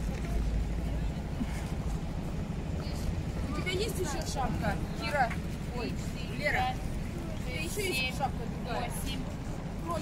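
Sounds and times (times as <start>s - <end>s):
people talking: 2.8s - 10.0s.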